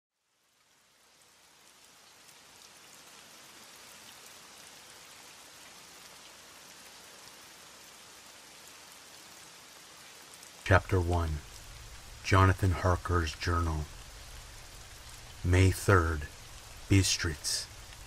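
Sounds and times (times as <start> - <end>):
soft steady rain: 0.1 - 18.0.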